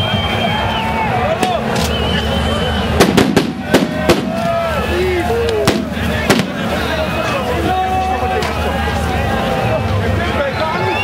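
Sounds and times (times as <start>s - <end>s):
voices shouting: 0.0s - 11.0s
grenade bangs: 3.0s - 4.7s, 5.6s - 6.9s.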